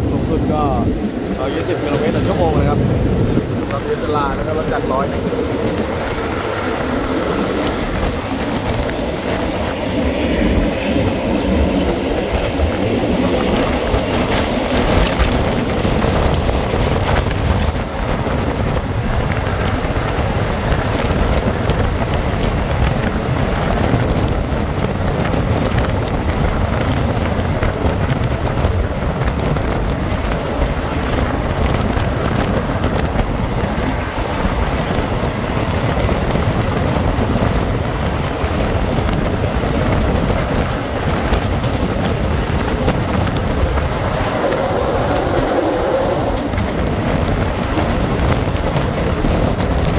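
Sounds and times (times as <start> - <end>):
train wheels rumbling on rails: 0.0 - 49.9.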